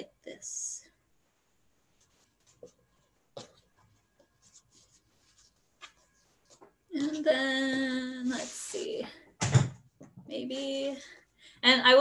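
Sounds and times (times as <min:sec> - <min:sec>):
t-shirt being folded: 0:01.6 - 0:09.1.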